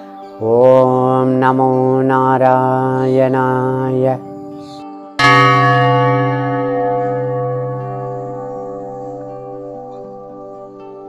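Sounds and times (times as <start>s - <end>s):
large bell ringing: 4.0s - 11.0s.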